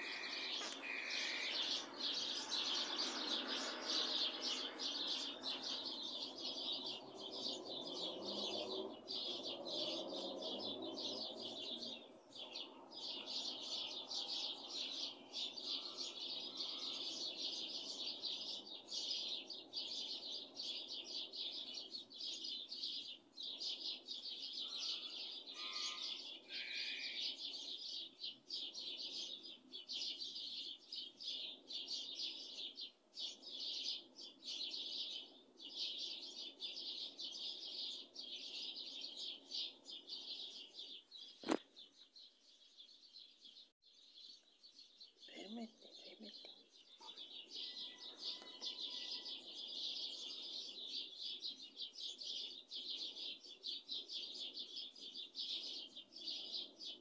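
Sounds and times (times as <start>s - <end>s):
lower bird calls: 0.0s - 7.4s, 24.6s - 27.4s
small birds chirping: 0.0s - 57.0s.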